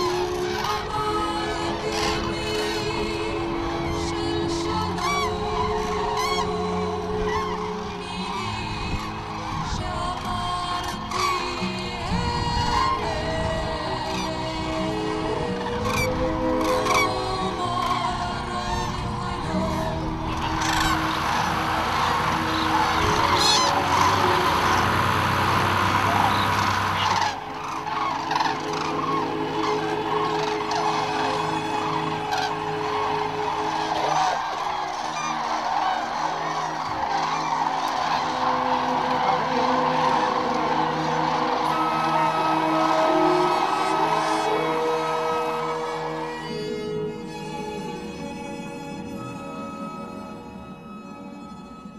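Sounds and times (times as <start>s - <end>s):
cranes calling: 0.0s - 51.6s
background music: 0.0s - 51.9s.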